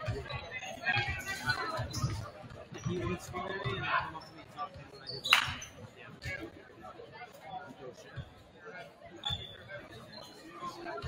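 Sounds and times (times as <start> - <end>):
faint murmur of voices: 0.0 - 11.0.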